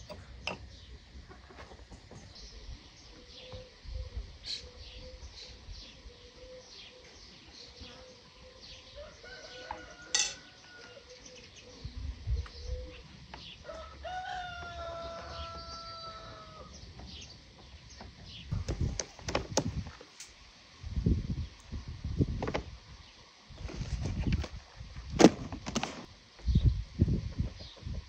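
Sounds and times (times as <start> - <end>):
small birds chirping: 2.0 - 9.7
rooster crowing: 8.9 - 11.2, 13.6 - 16.8.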